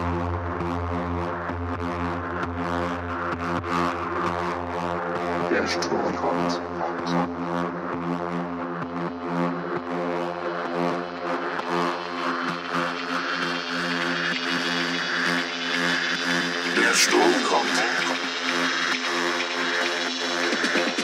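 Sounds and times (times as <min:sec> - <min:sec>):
steady bass: 0:00.0 - 0:09.7, 0:16.5 - 0:18.4
droning synth chord: 0:00.0 - 0:21.0
faint regular ticks: 0:11.5 - 0:21.0.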